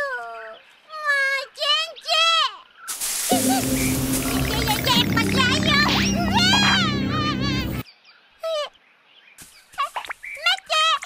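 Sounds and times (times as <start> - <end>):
background music: 3.3 - 7.8.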